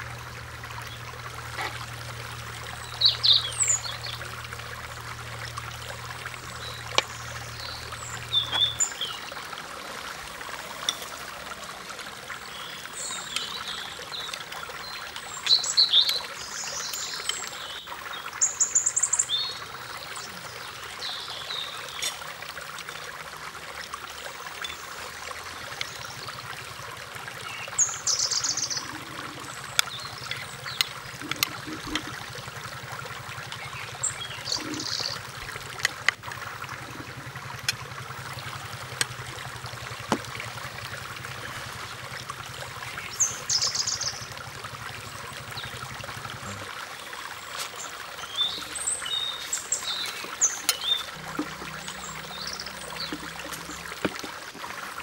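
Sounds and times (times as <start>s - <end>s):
running water: 0.0s - 55.0s
low steady hum: 19.2s - 55.0s.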